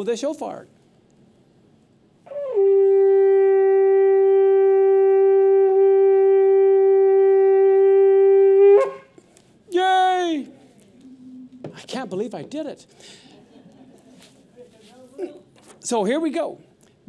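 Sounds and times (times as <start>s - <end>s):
shofar blast: 2.3s - 9.2s.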